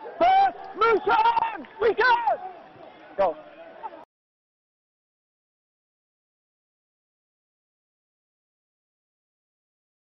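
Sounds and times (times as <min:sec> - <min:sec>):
person shouting: 0:00.1 - 0:02.4.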